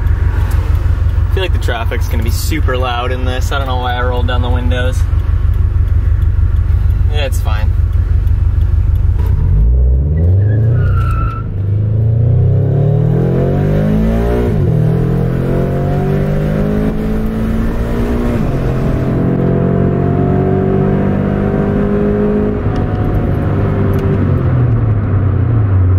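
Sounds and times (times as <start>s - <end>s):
car engine and exhaust: 0.0s - 25.9s.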